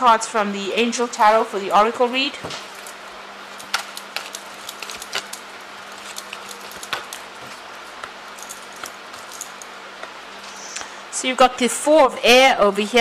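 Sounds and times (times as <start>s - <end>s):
faint hiss and hum: 0.0s - 13.0s
cards being shuffled: 2.5s - 9.6s.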